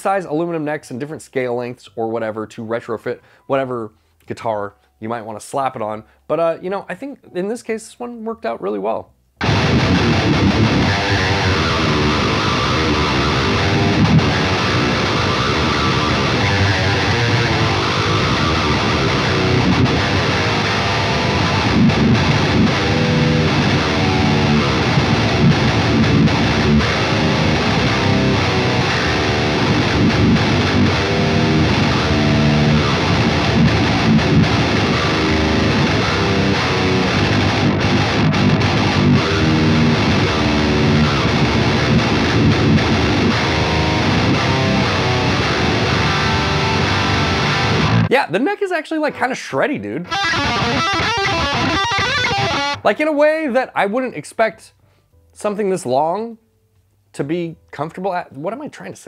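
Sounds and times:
distorted electric guitar riffs: 9.4s - 48.2s, 50.0s - 53.0s.

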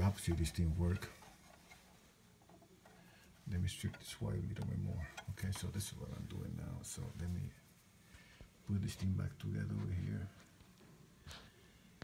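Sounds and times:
faint ticks of wires handled: 0.0s - 8.8s.

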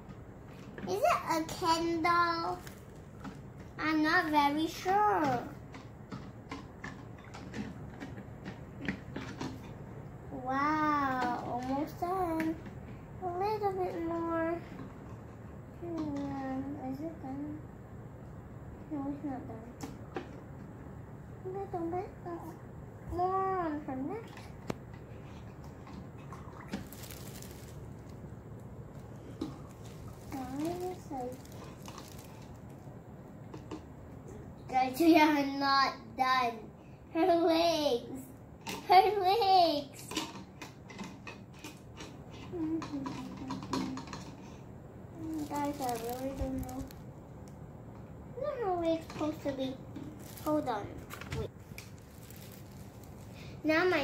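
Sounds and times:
water swishing in plastic tube: 25.2s - 32.9s, 49.9s - 54.0s.

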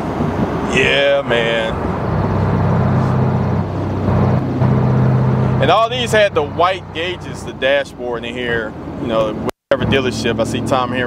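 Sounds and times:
car engine cruising drone: 0.0s - 11.0s
wind and road noise: 0.0s - 11.0s.

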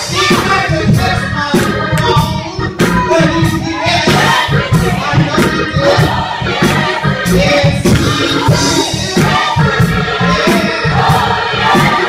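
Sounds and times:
driving bass line: 0.0s - 12.0s
gospel choir singing: 0.0s - 12.0s
instrumental accompaniment: 0.0s - 12.0s.

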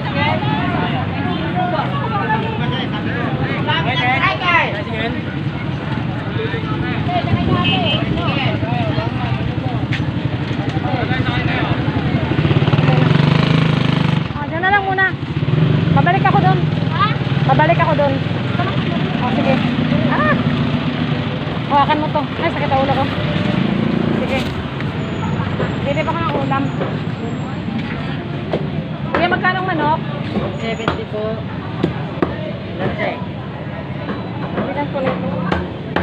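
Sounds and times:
people talking: 0.0s - 15.2s, 15.9s - 20.6s, 21.2s - 36.0s
motorcycle engine rumbling: 0.0s - 36.0s.

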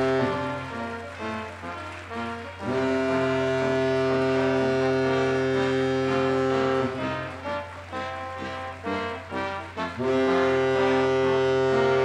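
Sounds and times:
background music: 0.0s - 12.0s
low horn-like tone: 0.0s - 12.0s.

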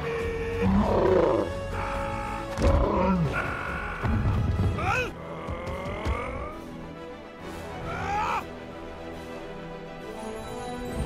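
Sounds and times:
loud growling cries: 0.0s - 4.2s.

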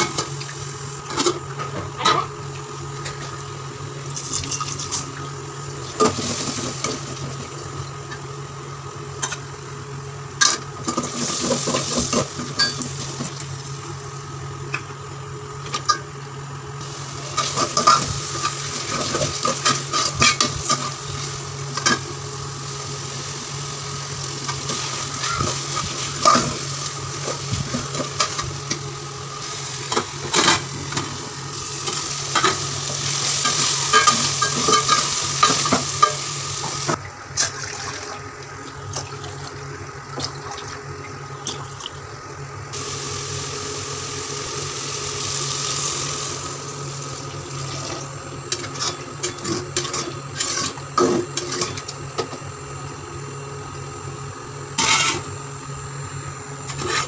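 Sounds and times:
food sizzling: 16.8s - 37.0s, 42.8s - 47.9s
metal spoon scraping a pot: 54.8s - 55.2s.

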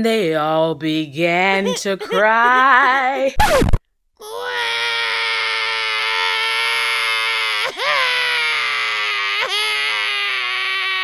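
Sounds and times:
cartoonish crying wail: 1.5s - 3.4s, 4.2s - 11.0s.

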